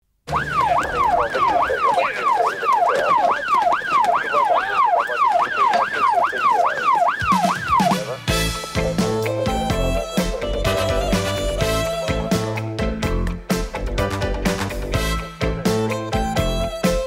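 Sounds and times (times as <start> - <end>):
siren yelping: 0.3 - 8.4
title music with drums and guitar: 7.7 - 17.0.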